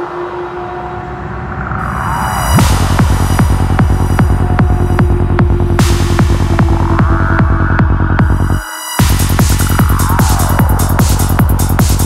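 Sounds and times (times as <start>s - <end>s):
falling synth sweeps: 0.0s - 12.0s
ratchet-like clicking bass pulse: 2.6s - 12.0s.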